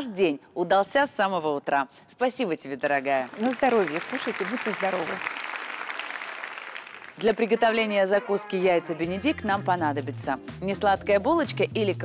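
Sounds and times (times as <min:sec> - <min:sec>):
audience applauding: 0:03.2 - 0:08.7.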